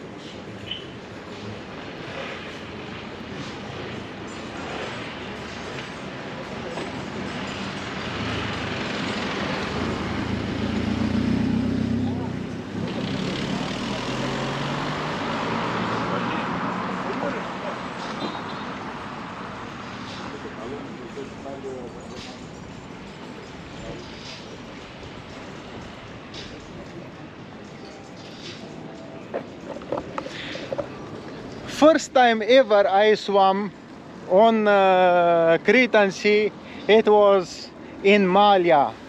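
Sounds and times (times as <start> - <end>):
background voices of people: 0.0 - 31.8
road traffic: 0.0 - 39.0.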